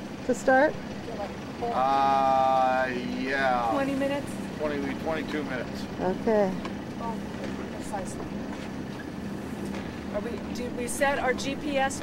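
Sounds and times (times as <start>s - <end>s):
low steady hum: 0.0s - 12.0s
wind: 0.0s - 12.0s.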